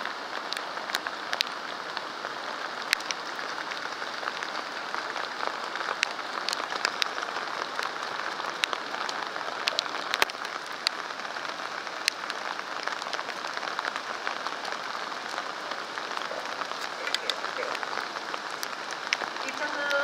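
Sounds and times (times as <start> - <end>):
steady rain falling: 0.0 - 20.0.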